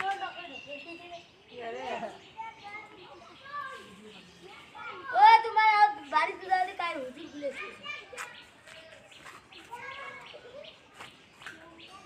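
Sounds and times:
children chattering and calling: 0:00.0 - 0:12.0.

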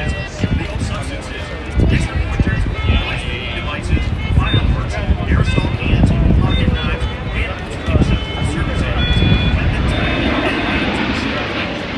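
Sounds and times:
airplane passing overhead: 0:00.0 - 0:11.9.

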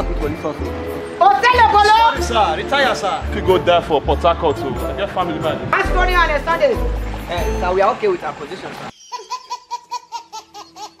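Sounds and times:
baby laughing: 0:08.9 - 0:11.0.

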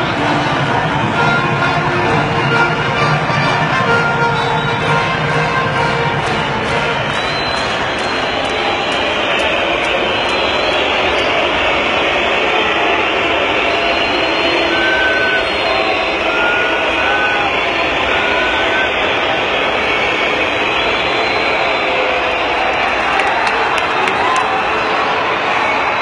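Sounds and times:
arena crowd roar: 0:00.0 - 0:26.0.

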